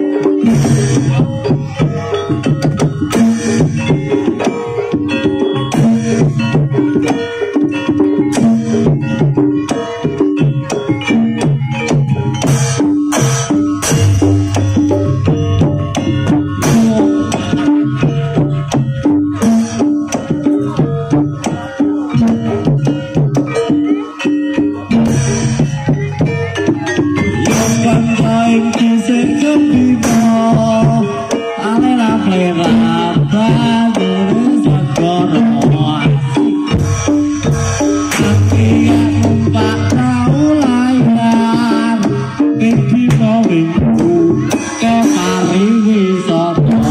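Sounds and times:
gamelan metal percussion melody: 0.0s - 46.9s
hand drum strokes: 10.6s - 24.0s, 32.9s - 45.7s
struck metal pitched notes: 12.5s - 19.8s, 36.6s - 42.4s.

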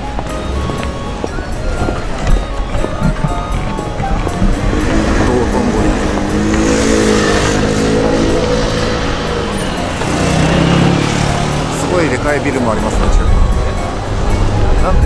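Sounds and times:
music: 0.0s - 15.0s
car engine passing: 3.3s - 15.0s.

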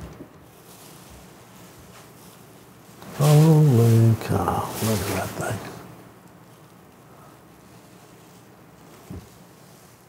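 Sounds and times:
bubble wrap rustling: 0.3s - 10.0s.

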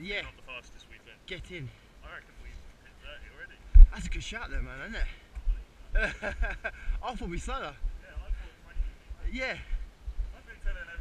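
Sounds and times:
men talking: 0.0s - 11.0s
low rumble: 6.4s - 11.0s.

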